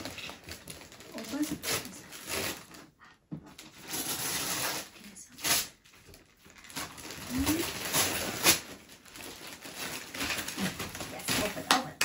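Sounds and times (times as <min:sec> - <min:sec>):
wrapping paper rustling and tearing: 0:00.0 - 0:12.0.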